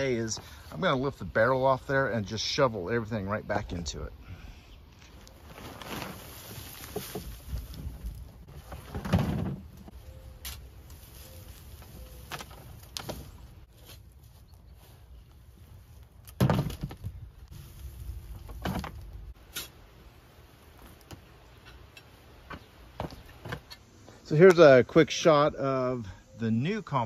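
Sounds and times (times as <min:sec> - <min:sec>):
garden fork digging compost: 0:05.0 - 0:15.2, 0:17.5 - 0:20.0
plastic bin being lifted: 0:05.5 - 0:09.9.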